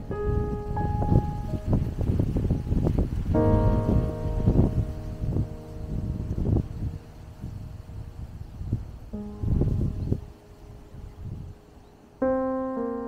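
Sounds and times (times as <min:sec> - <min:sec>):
sustained keyboard music: 0:00.0 - 0:08.4, 0:09.0 - 0:13.0
wind noise on microphone: 0:00.0 - 0:13.0.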